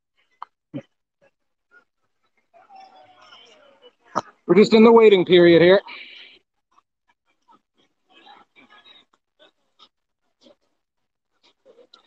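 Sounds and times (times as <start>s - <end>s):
faint indistinct voices: 0.3s - 12.0s.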